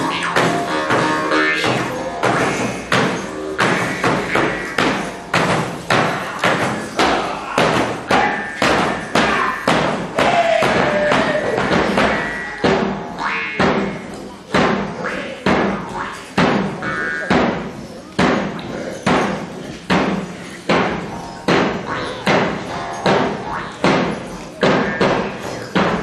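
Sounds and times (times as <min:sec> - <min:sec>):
frame drum beaten with a stick: 0:00.0 - 0:26.0.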